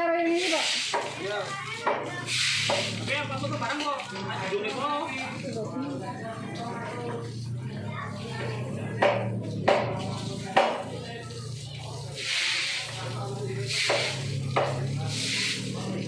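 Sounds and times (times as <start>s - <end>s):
hose spraying water on concrete: 0.1s - 16.0s
sharp knocks: 9.0s - 10.0s.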